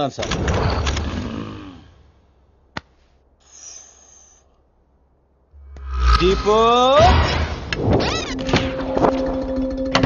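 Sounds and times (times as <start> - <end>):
loud rumbling whoosh: 5.6 - 7.7.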